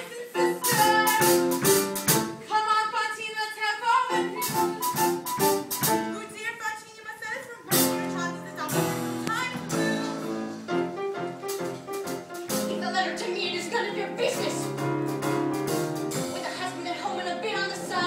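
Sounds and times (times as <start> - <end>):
instrumental accompaniment: 0.0 - 2.5, 4.1 - 6.4, 7.7 - 18.0
chorus of women singing: 16.3 - 18.0.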